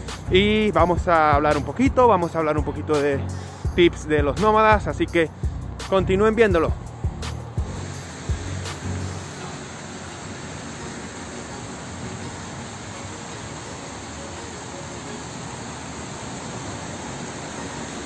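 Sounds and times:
faint background music: 0.0 - 18.0
passing road traffic: 1.5 - 18.0
splashing fountain jets: 7.7 - 18.0.

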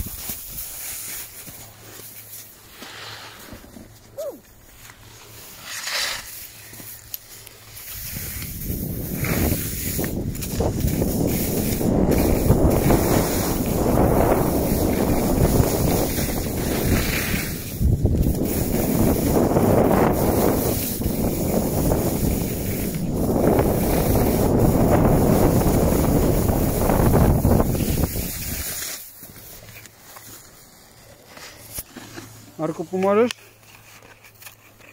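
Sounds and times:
skis sliding over snow: 0.0 - 34.9
wind buffeting microphone: 8.0 - 28.6.

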